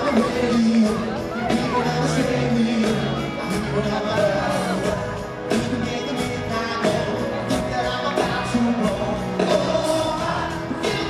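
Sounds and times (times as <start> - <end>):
live pop band with singing: 0.0 - 11.0.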